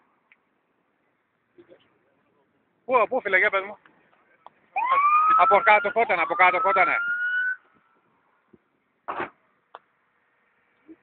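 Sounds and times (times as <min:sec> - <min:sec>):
emergency vehicle siren wailing: 0:04.8 - 0:07.7.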